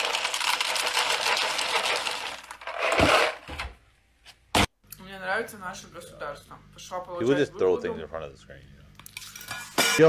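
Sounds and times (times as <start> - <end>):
cereal rattling into a bowl: 0.0 - 3.4.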